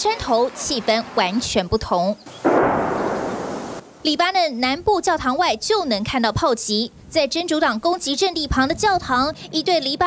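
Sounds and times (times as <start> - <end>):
artillery explosion boom: 2.4 - 4.0.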